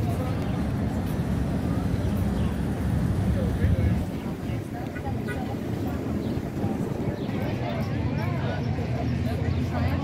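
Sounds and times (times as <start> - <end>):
indistinct chatter of passersby: 0.0 - 10.0.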